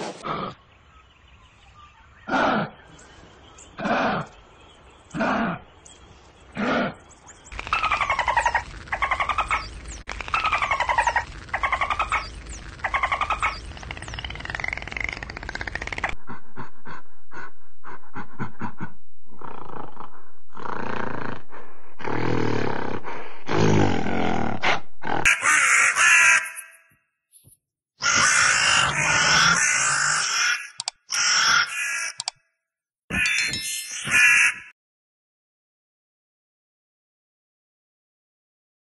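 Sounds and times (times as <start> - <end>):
animal grunts and calls: 0.2 - 0.7, 2.2 - 3.0, 3.7 - 4.5, 5.1 - 5.8, 6.5 - 26.4.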